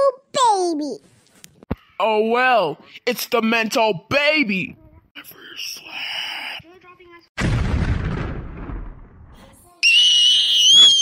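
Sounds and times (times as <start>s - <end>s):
boom: 7.4s - 9.4s
cartoon scream sound effect: 9.8s - 11.0s.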